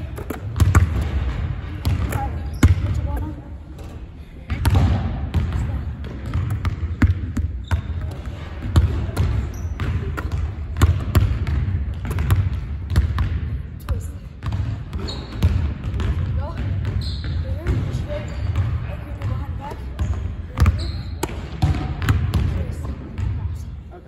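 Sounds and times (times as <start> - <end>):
basketballs bouncing on gym floor: 0.0 - 23.9.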